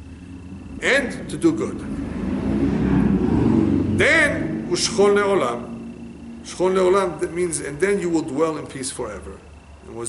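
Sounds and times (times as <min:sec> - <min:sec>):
low rumbling noise: 0:00.0 - 0:10.0
speech: 0:00.8 - 0:01.9, 0:04.0 - 0:05.7, 0:06.5 - 0:10.0.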